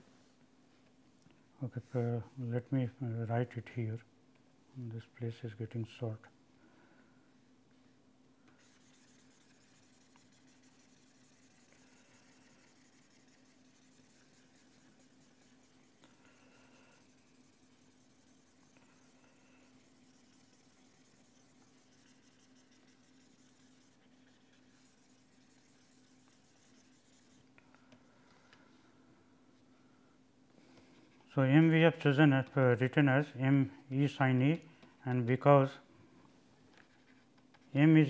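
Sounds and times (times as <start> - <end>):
low electrical hum: 0.0 - 38.0
stylus scratching on pen tablet: 8.6 - 27.4.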